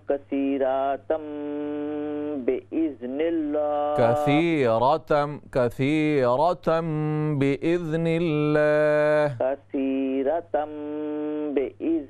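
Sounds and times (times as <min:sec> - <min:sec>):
telephone-like voice reciting: 0:00.0 - 0:12.0
man's voice holding a note: 0:04.0 - 0:06.7.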